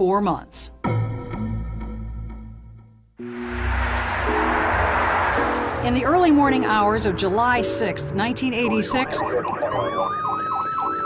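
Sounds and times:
wailing siren steady high note: 3.2s - 11.0s
yelping siren: 8.6s - 11.0s.

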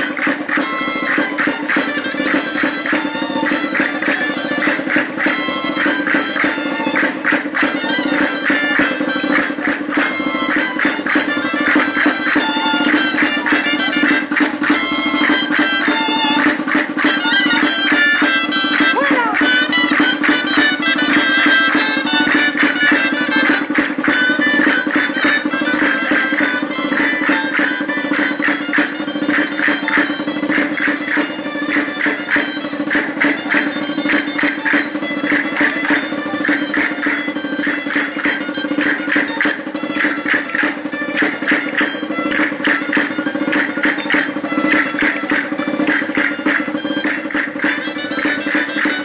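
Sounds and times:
fast percussion clicks: 0.0s - 49.0s
shawms playing folk dance tune: 0.0s - 49.0s.

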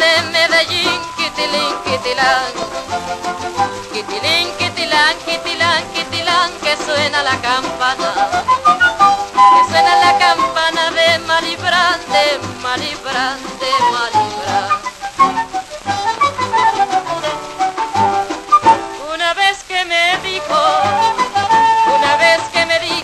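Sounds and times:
latin dance band with trumpet: 0.0s - 23.0s.

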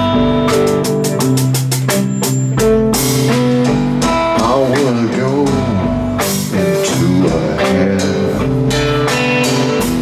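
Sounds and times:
drum kit with cymbals: 0.0s - 10.0s
electric guitars: 0.0s - 10.0s.

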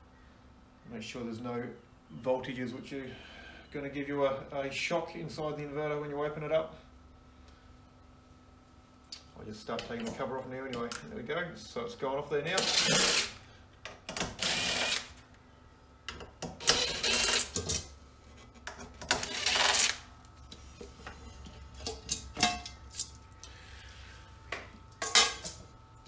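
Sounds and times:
cordless drill motor running: 12.6s - 13.4s, 14.2s - 15.2s, 16.6s - 17.6s, 19.1s - 20.1s.

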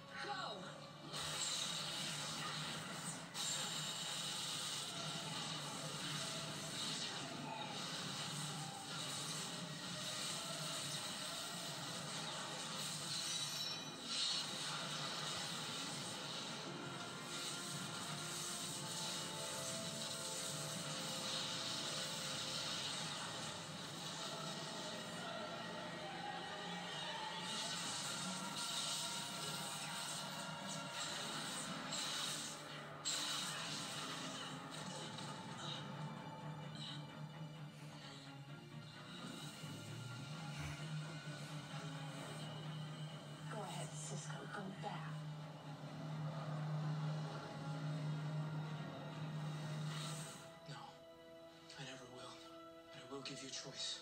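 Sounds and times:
dramatic music on television: 0.0s - 54.0s
ice shattering effect: 27.4s - 35.6s.

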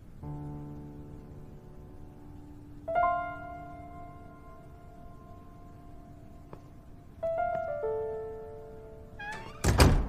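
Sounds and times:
soft piano music: 0.0s - 10.0s
door squeak: 9.2s - 10.0s
heavy wooden door shutting: 9.2s - 10.0s.

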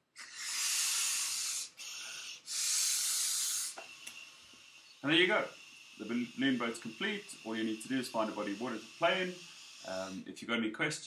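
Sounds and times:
breathy blows into balloon: 0.0s - 10.3s
soft breath: 0.1s - 10.3s.

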